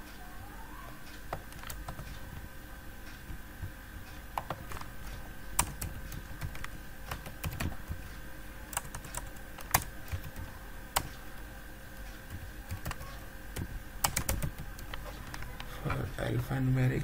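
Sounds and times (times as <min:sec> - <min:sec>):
computer keyboard typing: 0:01.3 - 0:02.5, 0:03.1 - 0:15.7.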